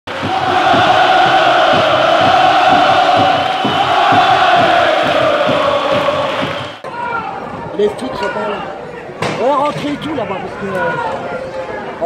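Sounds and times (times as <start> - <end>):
low thumps: 0.1 - 6.8
stadium crowd chanting: 0.1 - 6.8.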